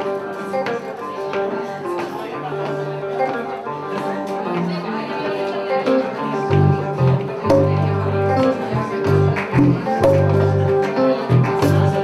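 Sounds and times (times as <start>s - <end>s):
electric guitars picking melodies: 0.0s - 12.0s
hand drum beat: 5.9s - 12.0s
low bass notes: 6.5s - 12.0s.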